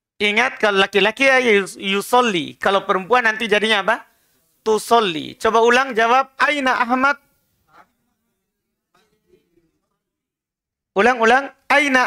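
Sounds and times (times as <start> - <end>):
man talking: 0.2 - 7.2, 11.0 - 12.0.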